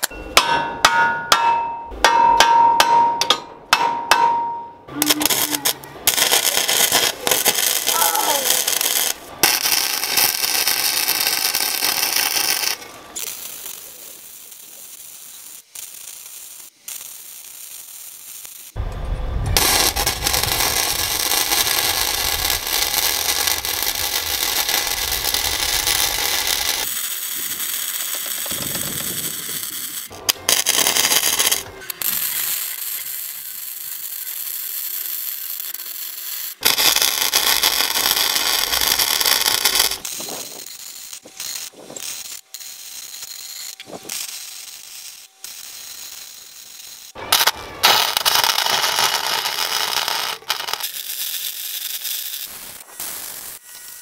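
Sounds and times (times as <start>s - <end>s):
arc welding crackling sizzle: 4.9s - 54.0s.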